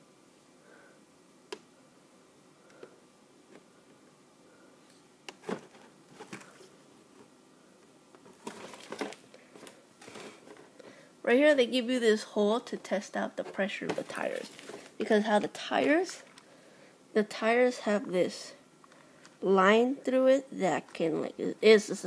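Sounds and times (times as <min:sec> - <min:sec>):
rustling handling noise: 0:05.2 - 0:07.4, 0:08.1 - 0:10.8, 0:13.4 - 0:16.5.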